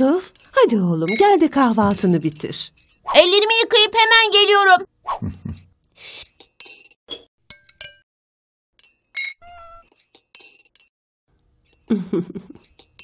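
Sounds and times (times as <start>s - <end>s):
glasses and cutlery clinking: 6.4s - 8.0s, 8.8s - 10.9s, 12.5s - 13.0s.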